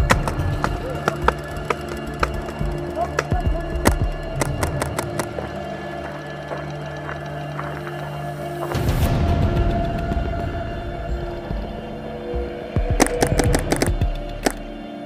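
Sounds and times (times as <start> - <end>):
background music sustained tones: 0.0 - 15.0
paintball marker shots: 13.0 - 14.6.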